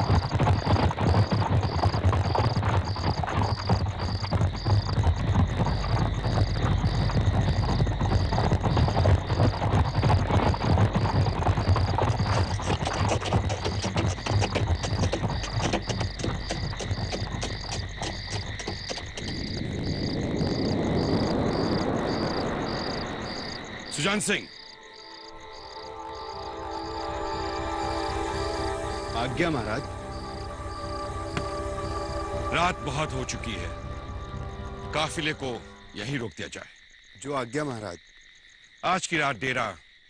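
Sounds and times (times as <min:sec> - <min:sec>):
low irregular thudding: 0:00.0 - 0:20.7
horse hooves: 0:00.0 - 0:25.7, 0:27.8 - 0:36.4
crickets chirping: 0:00.0 - 0:40.0
frogs croaking: 0:00.0 - 0:40.0
rush of noise: 0:19.5 - 0:24.5.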